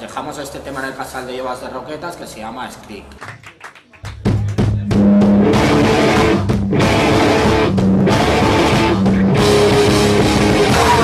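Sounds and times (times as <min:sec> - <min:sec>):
punk rock band playing live: 0:04.2 - 0:11.0.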